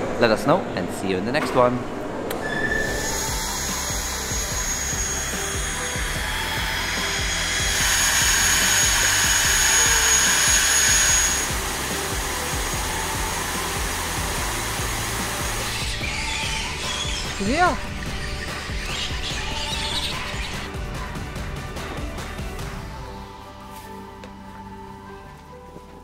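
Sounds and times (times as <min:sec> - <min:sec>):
background music: 0:00.1 - 0:26.0
whining whirring drone: 0:02.3 - 0:20.7.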